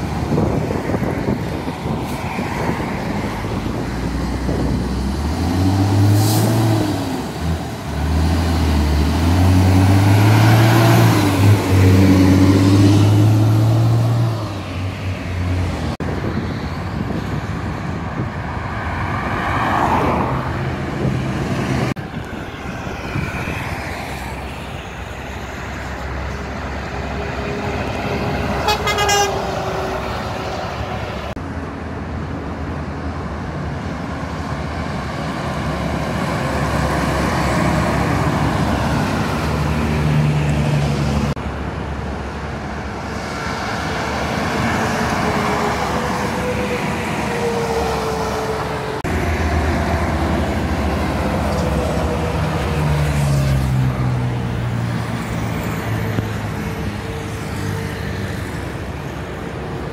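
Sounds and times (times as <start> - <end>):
diesel truck accelerating: 0.0 - 59.9
highway traffic passing: 0.0 - 59.9
truck horn: 27.4 - 30.3.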